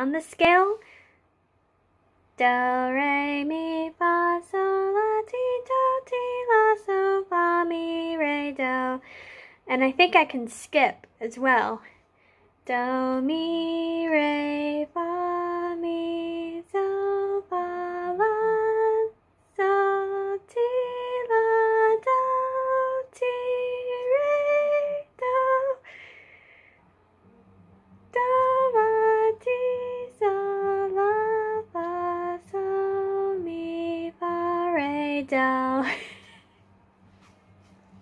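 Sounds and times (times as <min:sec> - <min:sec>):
girl singing unaccompanied: 0:02.3 - 0:09.0, 0:12.6 - 0:25.9, 0:27.9 - 0:36.0.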